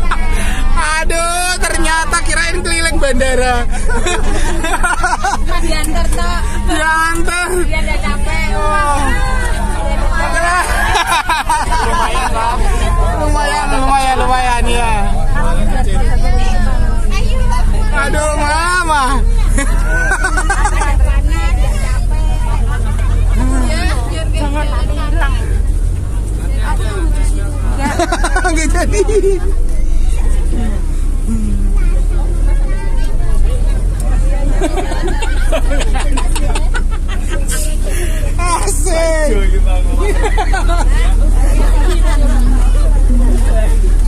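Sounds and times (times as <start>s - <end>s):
bus engine rumble: 0.0s - 44.0s
passengers chattering: 0.0s - 44.0s.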